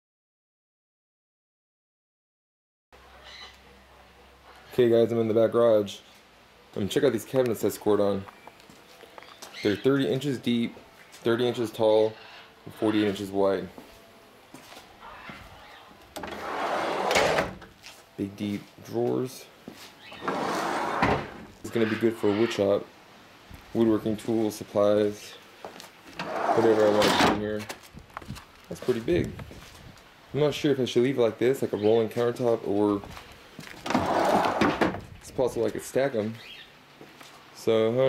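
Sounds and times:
drawer rolling on metal slides: 16.2 - 17.6, 20.2 - 21.5, 26.2 - 27.4, 33.8 - 35.0.

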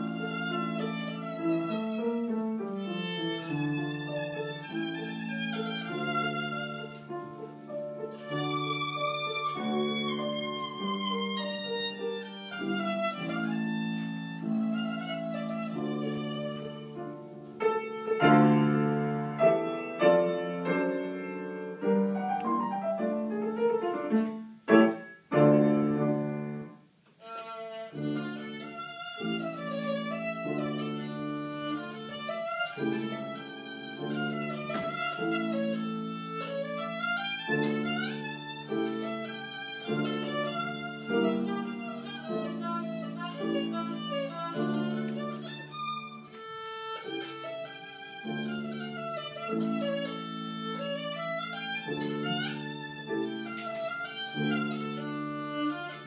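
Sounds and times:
violin melody: 0.0 - 56.0.

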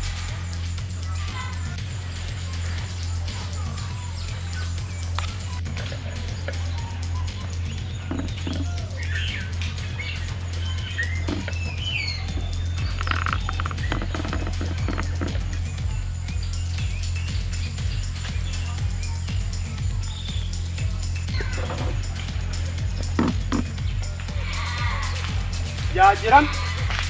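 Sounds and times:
background music with bass and beat: 0.0 - 27.0
birds chirping: 0.0 - 27.0.

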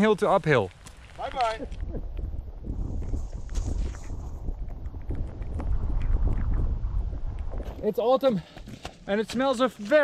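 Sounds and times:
wind buffeting microphone: 0.8 - 9.2.

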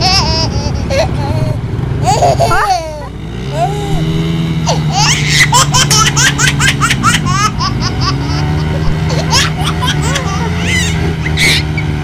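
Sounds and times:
person laughing: 0.0 - 4.1, 6.9 - 11.6
motorcycle engines revving: 0.0 - 12.0.

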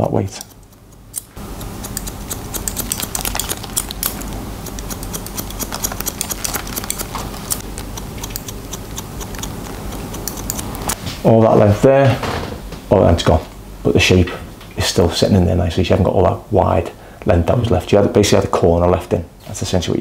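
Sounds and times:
scissors snipping hair: 0.0 - 11.0
faint steady hum: 0.0 - 20.0.

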